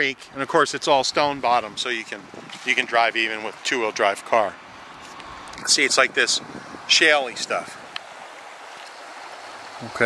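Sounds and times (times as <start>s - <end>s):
creek running over stones: 0.0s - 10.0s.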